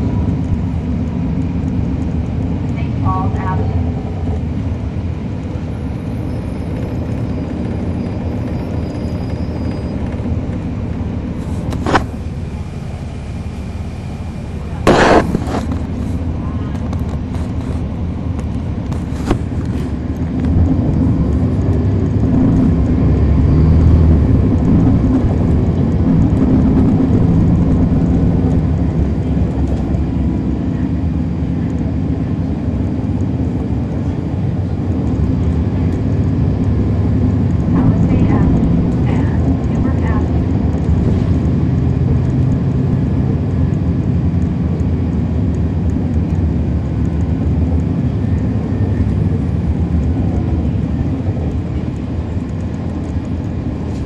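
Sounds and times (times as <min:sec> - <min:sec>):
bus diesel engine running: 0:00.0 - 0:54.0.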